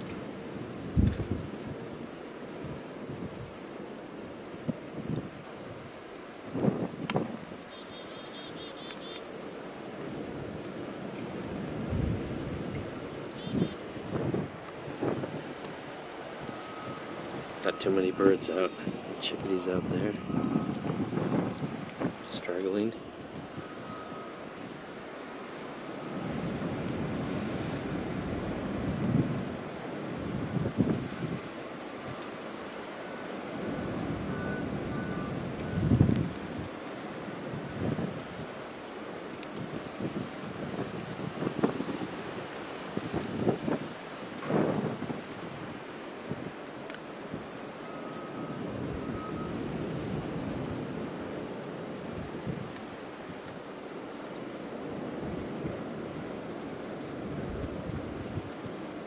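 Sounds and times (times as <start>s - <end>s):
wind gusts buffeting microphone: 0.0s - 3.6s, 4.6s - 7.6s, 9.9s - 32.2s, 33.3s - 46.7s, 48.4s - 53.6s, 54.7s - 59.0s
blizzard wind blowing: 0.0s - 7.8s, 9.3s - 59.0s.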